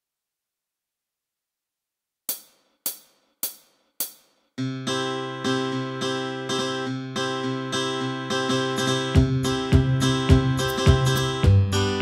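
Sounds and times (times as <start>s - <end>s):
hi-hat ticks: 2.3s - 4.4s
karaoke backing track: 8.8s - 12.0s.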